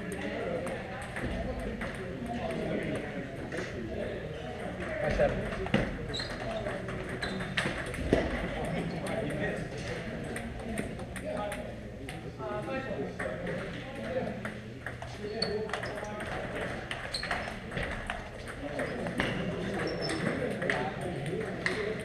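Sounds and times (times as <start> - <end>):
table tennis balls clicking: 0.1 - 3.1, 4.6 - 12.2, 13.2 - 22.0.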